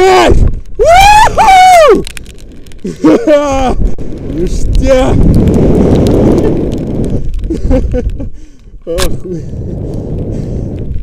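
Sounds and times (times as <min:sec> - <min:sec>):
man yelling excitedly: 0:00.0 - 0:02.0, 0:04.5 - 0:05.2
faint clicks: 0:01.9 - 0:03.0.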